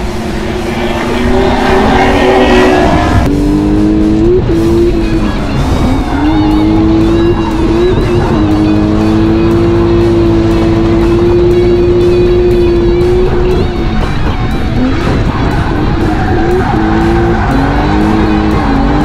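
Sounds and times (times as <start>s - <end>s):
car engine revving high: 0.0s - 19.0s
music: 0.0s - 19.0s.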